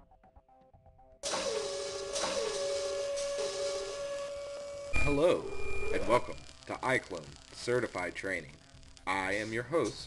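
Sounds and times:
robotic whirring hum: 0:01.2 - 0:10.0.

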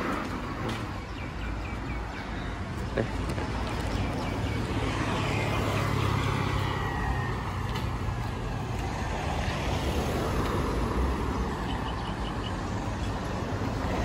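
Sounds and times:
passing cars: 0:00.0 - 0:14.0.

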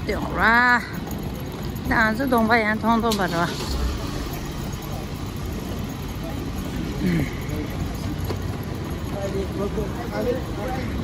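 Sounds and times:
street noise: 0:00.0 - 0:11.0
suitcase wheels rattling on paving: 0:00.0 - 0:11.0.

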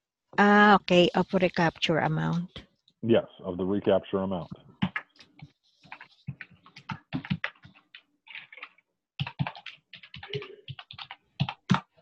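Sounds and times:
typing on a computer keyboard: 0:05.9 - 0:12.0.

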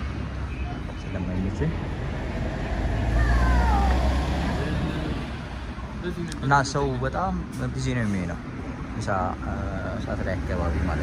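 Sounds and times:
vehicle passing with rumble: 0:01.6 - 0:06.1.

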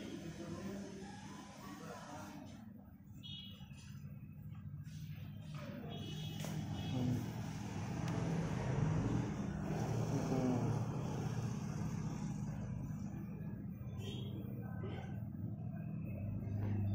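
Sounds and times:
scooter engine idling: 0:06.0 - 0:16.9.

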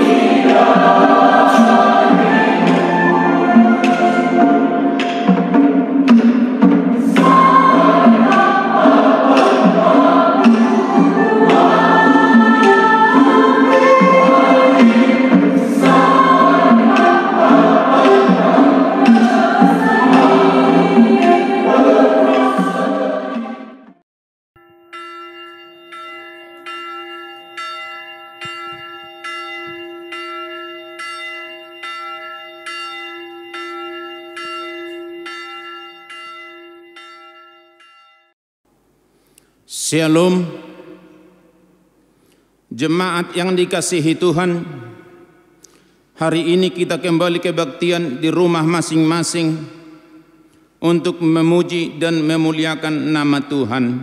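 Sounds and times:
choir singing a hymn: 0:00.0 - 0:06.0, 0:06.8 - 0:23.9
bell-like chiming music: 0:07.2 - 0:23.5, 0:24.6 - 0:38.4.

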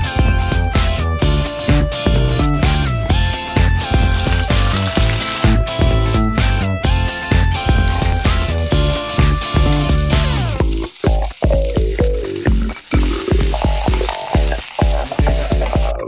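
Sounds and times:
background music with steady beat: 0:00.0 - 0:16.0
shallots sizzling in oil: 0:03.6 - 0:16.0
wooden spatula stirring: 0:07.8 - 0:16.0.

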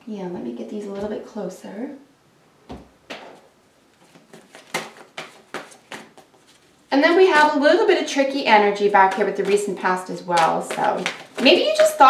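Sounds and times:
cards shuffled by hand: 0:04.0 - 0:06.8.

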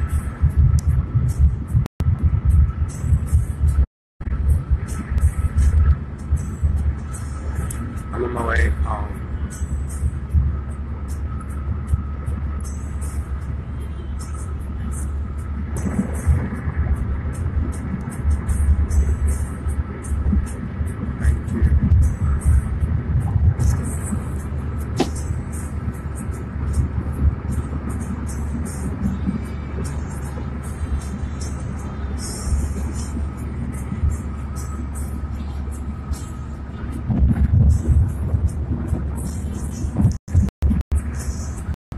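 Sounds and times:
car cabin rumble: 0:00.0 - 0:41.8
music playing: 0:00.0 - 0:41.8.

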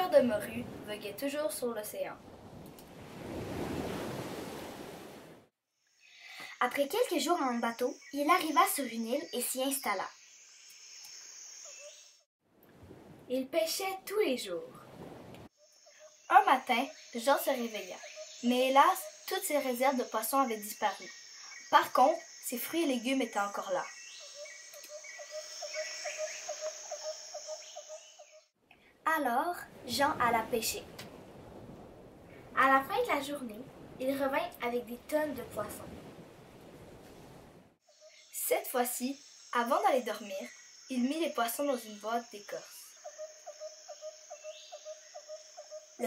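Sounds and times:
insect chirps: 0:05.7 - 0:12.3, 0:15.5 - 0:28.6, 0:37.8 - 0:46.0
insects droning: 0:05.7 - 0:12.3, 0:15.5 - 0:28.5, 0:37.8 - 0:46.0
bird-like calls: 0:23.3 - 0:28.5, 0:41.8 - 0:46.0.

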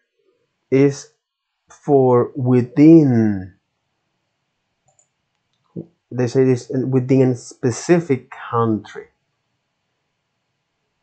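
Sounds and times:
computer mouse click: 0:04.9 - 0:05.1.

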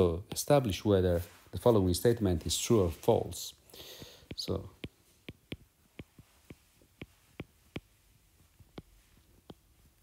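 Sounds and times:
stylus clicking on glass screen: 0:04.0 - 0:08.0.

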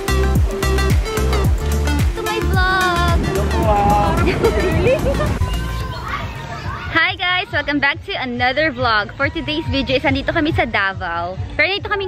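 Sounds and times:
people talking and calling out: 0:01.9 - 0:12.0.

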